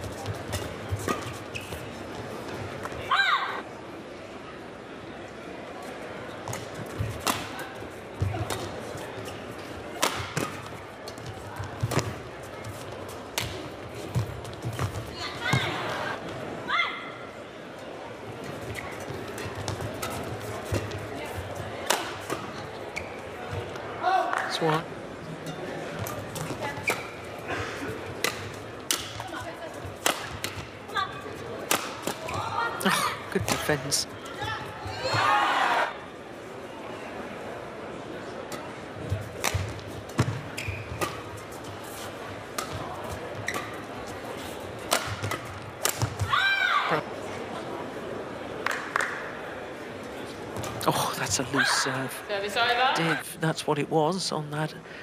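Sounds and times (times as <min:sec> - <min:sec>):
arena crowd noise: 0:00.0 - 0:55.0
rackets striking shuttlecock: 0:39.4 - 0:41.3, 0:42.6 - 0:43.9, 0:44.8 - 0:46.3.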